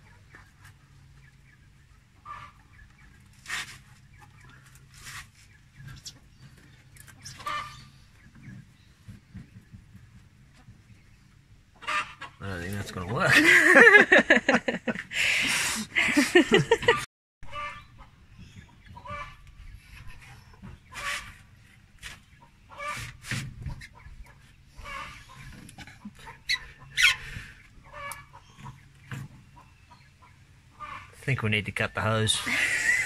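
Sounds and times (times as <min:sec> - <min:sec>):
chickens clucking: 0:00.0 - 0:33.0.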